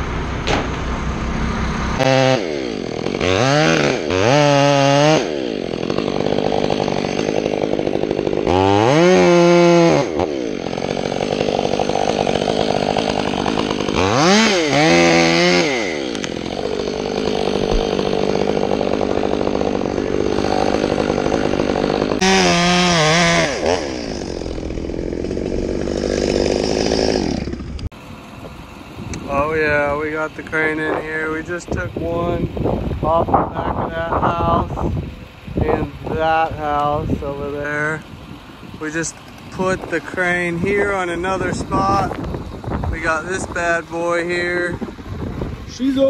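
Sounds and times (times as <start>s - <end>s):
chainsaw cutting through wood: 0.1s - 28.0s, 28.8s - 46.0s.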